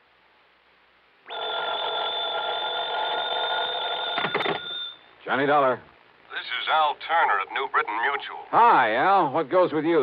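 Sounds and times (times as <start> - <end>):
telephone bell ringing: 1.3 - 5.1.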